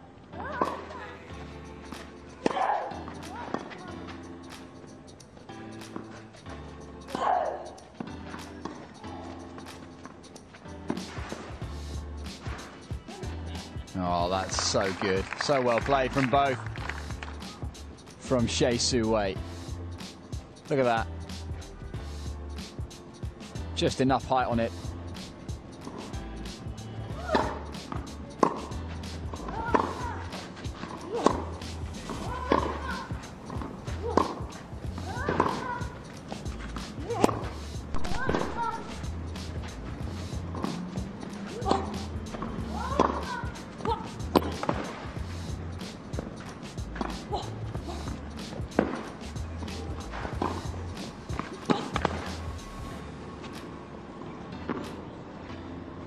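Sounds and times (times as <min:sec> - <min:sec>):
racquet striking tennis ball: 0:27.2 - 0:38.6, 0:42.9 - 0:43.5, 0:48.7 - 0:49.1.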